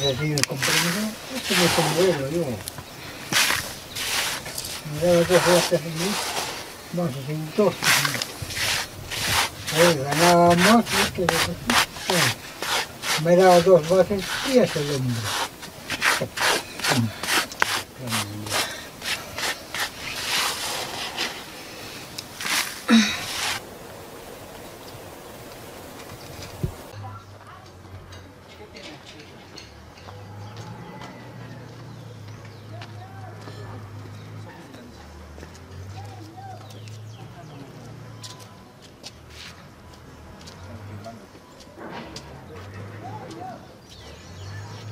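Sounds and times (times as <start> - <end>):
stone grinding maize: 0.4 - 21.5.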